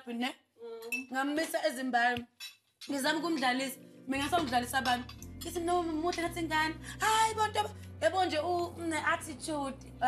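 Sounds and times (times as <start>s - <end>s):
woman speaking: 0.0s - 2.2s, 2.9s - 10.0s
cutlery clinking against plates: 4.2s - 5.6s.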